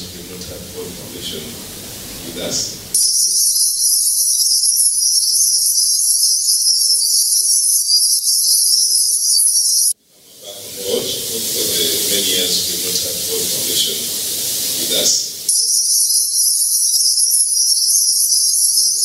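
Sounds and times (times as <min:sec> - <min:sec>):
high-pitched electronic hiss: 0:00.0 - 0:19.0.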